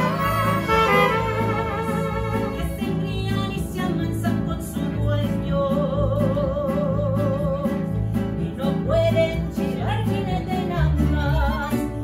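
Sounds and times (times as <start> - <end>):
mariachi band playing: 0.0 - 12.0.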